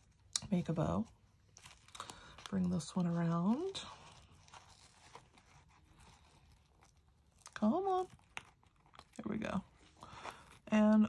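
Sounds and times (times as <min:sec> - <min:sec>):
ribbon and card rustling: 0:00.0 - 0:11.0.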